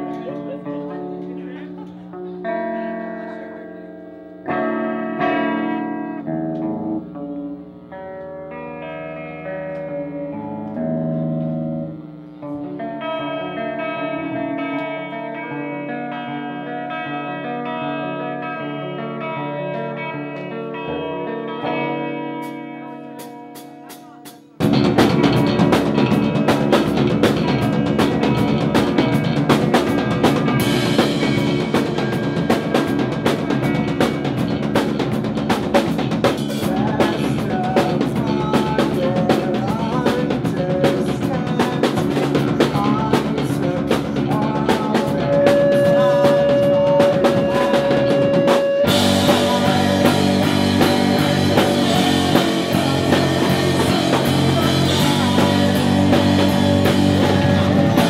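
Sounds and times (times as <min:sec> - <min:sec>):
electric guitar ringing notes: 0:00.0 - 0:58.0
live rock band: 0:00.0 - 0:58.0
drum kit: 0:22.4 - 0:58.0.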